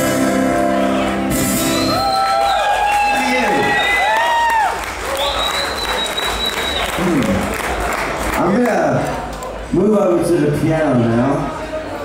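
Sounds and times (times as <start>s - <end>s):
audience applauding and cheering: 0.4s - 9.7s.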